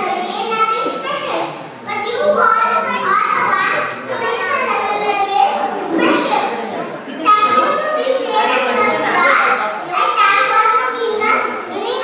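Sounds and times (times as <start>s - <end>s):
girl speaking into a microphone: 0.0s - 12.0s.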